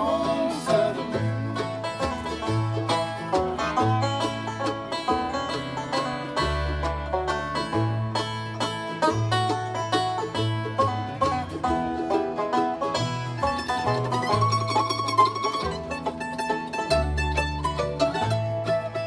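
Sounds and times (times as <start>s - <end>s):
acoustic guitar: 0.0s - 19.0s
banjo picking: 0.0s - 19.0s
upright bass: 0.0s - 19.0s.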